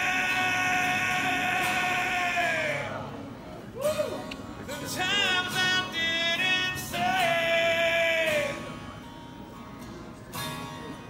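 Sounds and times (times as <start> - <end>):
man singing a long high note: 0.0 - 3.2, 4.8 - 8.8.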